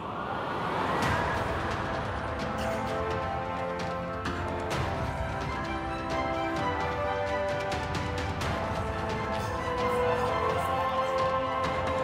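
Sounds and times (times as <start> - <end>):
rising whoosh effect: 0.0 - 2.5
background music: 0.7 - 12.0.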